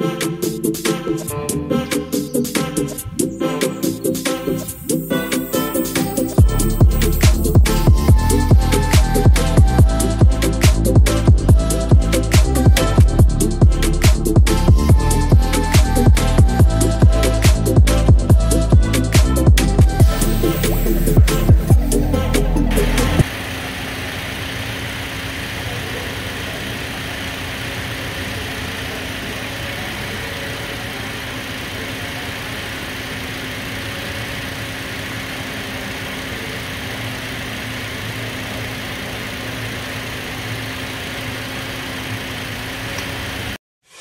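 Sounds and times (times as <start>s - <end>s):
car engine idling: 0.0s - 43.6s.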